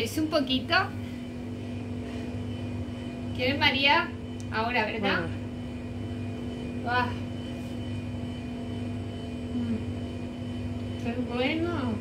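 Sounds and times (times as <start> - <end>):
machine hum with whining tones: 0.0 - 12.0.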